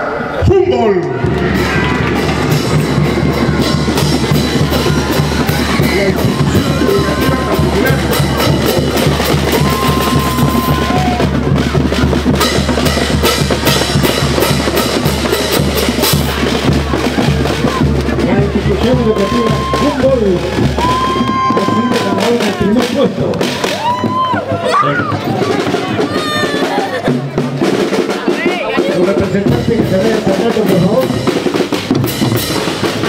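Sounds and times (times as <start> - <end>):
held high notes: 0.0 - 11.7
bass drums: 0.4 - 33.0
marching band playing: 0.4 - 33.0
snare drums: 0.5 - 33.0
cymbals: 1.2 - 24.3.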